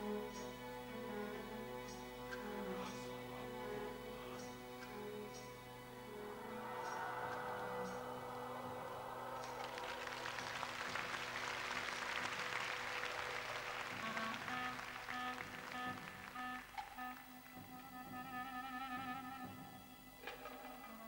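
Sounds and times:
soft sustained music: 0.0s - 21.0s
audience applause: 6.3s - 17.3s.

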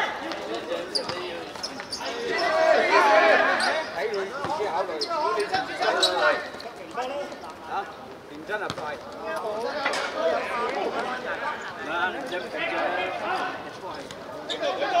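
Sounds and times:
people shouting: 2.0s - 3.8s.

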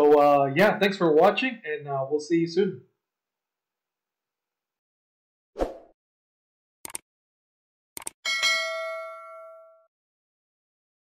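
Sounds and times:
notification bell ding: 8.3s - 9.9s.

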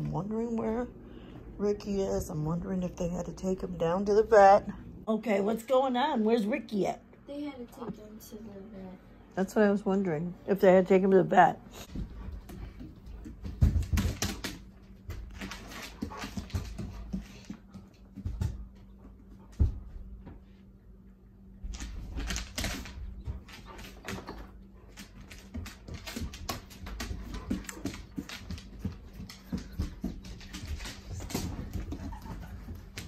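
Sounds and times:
claws clicking on tile floor: 21.7s - 33.0s
person running footsteps: 25.1s - 33.0s.

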